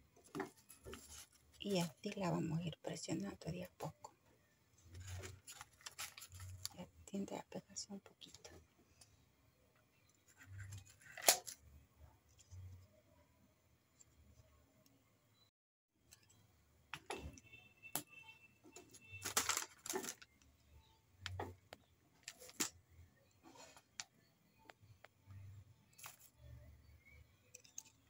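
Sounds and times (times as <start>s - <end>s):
paper crinkling: 0.3s - 2.1s, 4.9s - 6.8s, 18.9s - 20.4s.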